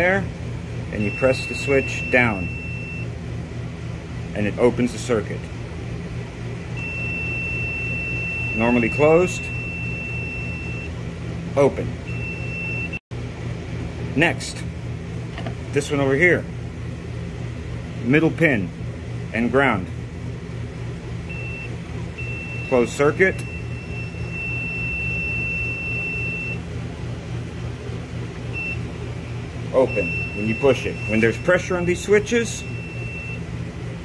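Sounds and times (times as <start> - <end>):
low pulsing hum: 0.0 - 34.0
high continuity beep: 1.0 - 3.1, 6.8 - 10.9, 12.1 - 13.0, 21.3 - 26.6, 28.5 - 28.9, 29.7 - 33.4.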